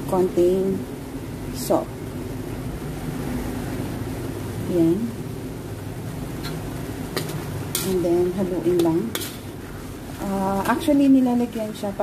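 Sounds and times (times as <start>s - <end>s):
spatula scraping wok: 6.3s - 10.9s.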